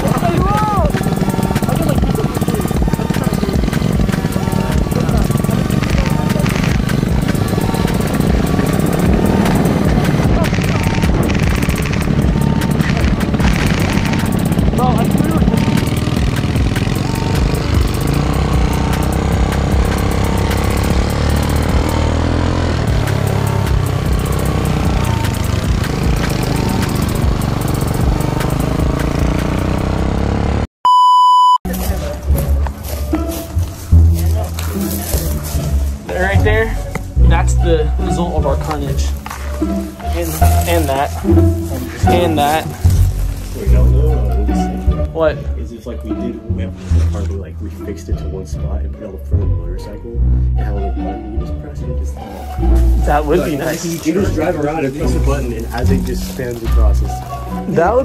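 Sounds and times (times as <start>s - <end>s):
background music: 0.0s - 30.6s, 31.7s - 58.0s
go-kart motor running: 0.0s - 30.7s, 31.8s - 45.1s, 52.5s - 58.0s
electronic beep: 30.8s - 31.6s.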